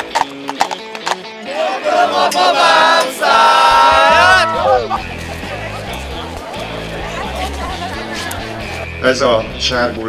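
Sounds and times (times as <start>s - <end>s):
horse hooves clip-clopping on road: 0.0s - 1.4s
background music: 0.0s - 10.0s
group of voices singing: 1.4s - 8.7s.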